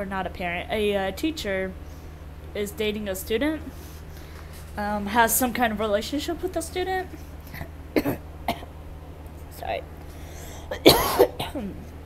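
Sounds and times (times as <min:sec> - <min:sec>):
woman coughing: 0:07.6 - 0:08.7, 0:10.6 - 0:11.8.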